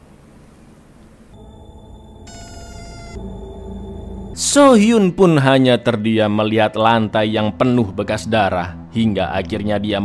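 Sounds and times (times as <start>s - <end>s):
bright high chord: 1.4s - 4.9s
eerie sustained tones: 1.4s - 9.8s.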